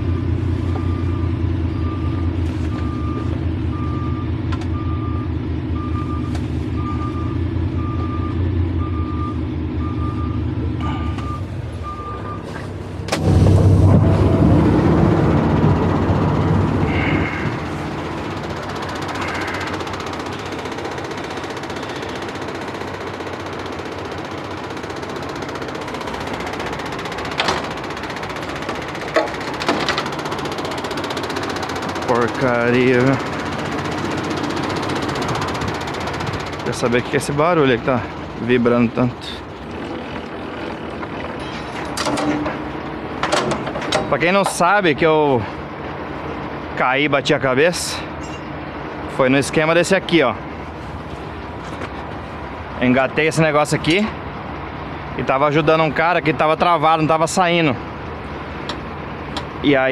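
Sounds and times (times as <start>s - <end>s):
backup alarm beeping: 0.0s - 13.5s
diesel truck engine running: 0.0s - 59.9s
low rumble: 12.8s - 18.5s.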